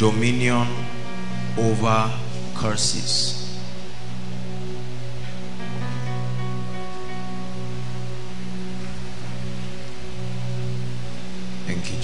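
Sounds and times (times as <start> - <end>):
background music of low chords: 0.0 - 12.0.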